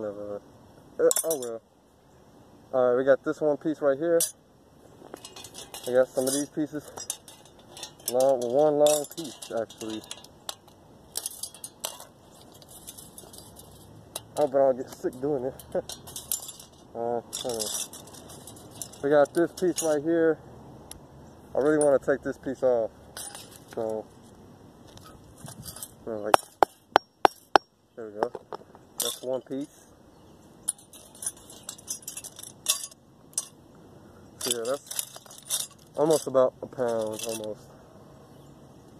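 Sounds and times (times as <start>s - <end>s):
copper pipe pieces clinking: 1.0s - 1.6s, 5.0s - 20.0s, 23.2s - 24.0s, 24.9s - 29.7s, 30.6s - 33.6s, 34.4s - 37.6s.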